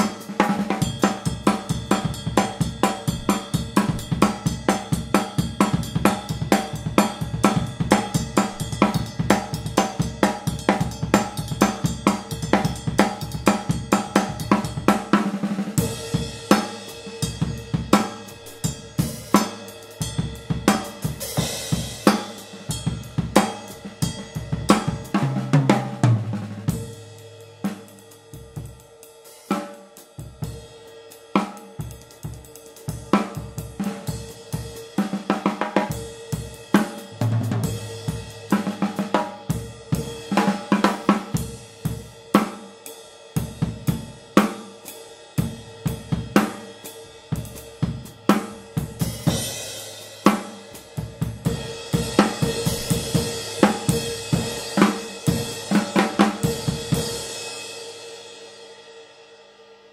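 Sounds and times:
snare drum: 0.0s - 15.8s, 51.9s - 57.2s
bass drum: 1.7s - 9.9s, 37.1s - 38.7s, 51.0s - 57.2s.

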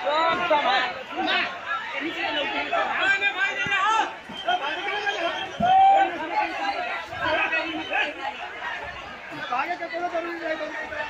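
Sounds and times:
people chattering excitedly: 0.0s - 11.0s.

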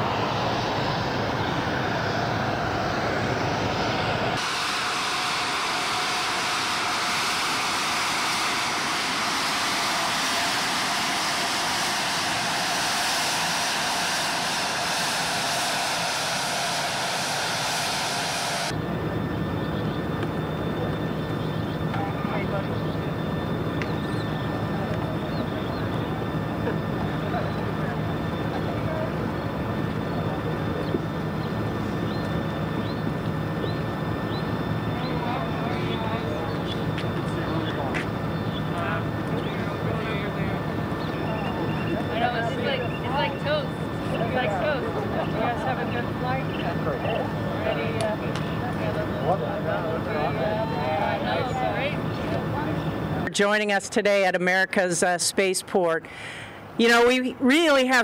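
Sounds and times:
idling engine hum: 0.0s - 53.3s
jet engines with high hiss: 0.0s - 58.0s.

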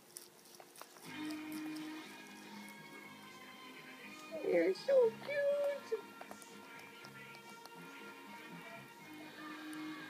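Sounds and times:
rabbit chewing: 0.0s - 10.0s
television soundtrack music: 0.0s - 10.0s.

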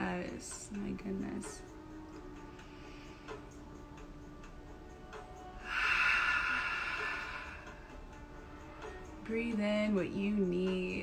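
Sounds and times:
woman breathing out: 5.6s - 8.0s.

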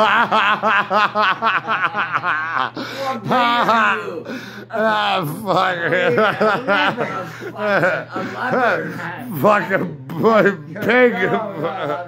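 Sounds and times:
man laughing hard: 0.0s - 4.2s, 5.3s - 8.5s.

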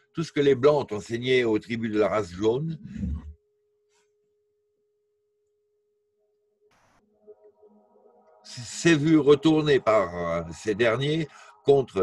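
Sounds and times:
faint steady tone: 6.2s - 12.0s.

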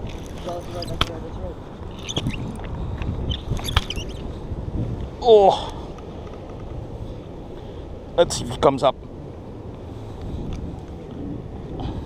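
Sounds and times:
wind on microphone: 0.0s - 7.3s, 9.9s - 12.0s
camera rubbing against shirt: 0.1s - 1.2s, 1.9s - 4.3s.

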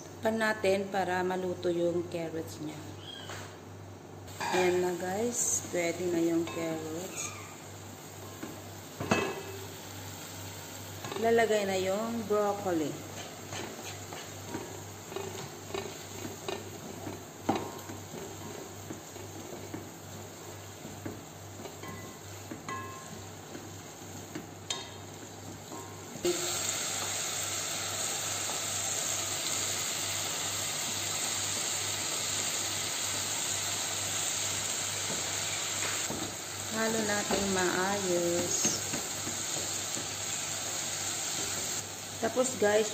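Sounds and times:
vegetables sizzling: 4.3s - 42.9s
wooden spatula scraping a pot: 12.9s - 20.1s.

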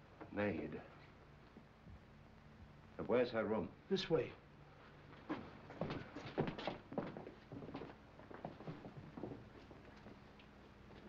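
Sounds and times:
footsteps in hallway: 5.1s - 11.0s.

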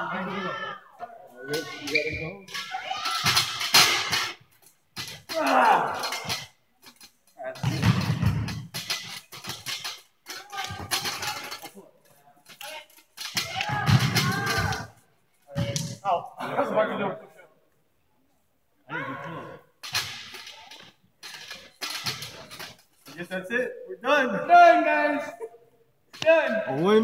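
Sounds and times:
men shouting: 5.3s - 6.3s.

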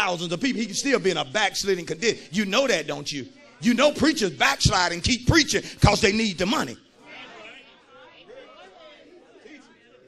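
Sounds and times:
congregation murmuring and responding: 0.0s - 10.0s.

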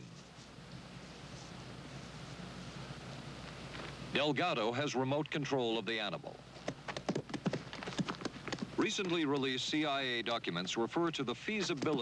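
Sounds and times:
bull's hooves pounding dirt: 6.6s - 12.0s.

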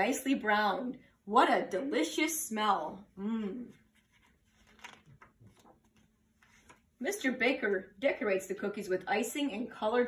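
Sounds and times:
faint clicks and rustles: 3.8s - 7.0s.

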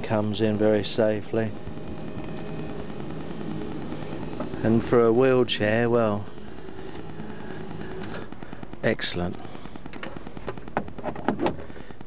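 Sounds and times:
faint steady tones: 0.0s - 12.0s
low mechanical hum: 0.0s - 12.0s.

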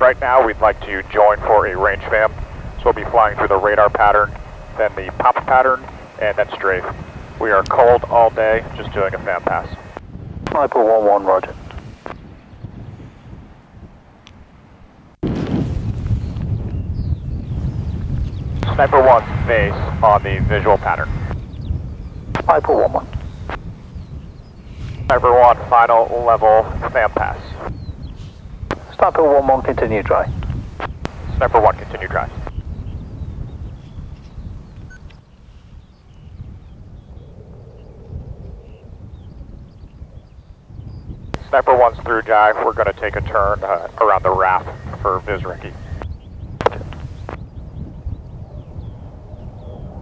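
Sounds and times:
distant jet flyby: 0.0s - 15.2s, 17.5s - 21.6s, 24.7s - 27.8s, 28.6s - 32.6s, 41.3s - 47.6s
wind rumbling on microphone: 0.0s - 50.0s.

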